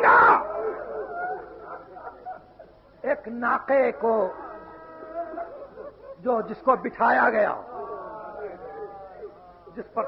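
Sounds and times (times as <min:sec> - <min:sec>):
mourners weeping and wailing: 0:00.0 - 0:03.0, 0:03.6 - 0:10.0.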